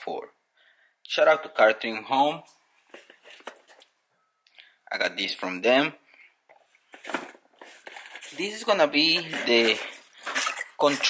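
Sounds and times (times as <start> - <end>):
cardboard boxes rustling: 2.9 - 3.8, 6.8 - 11.0.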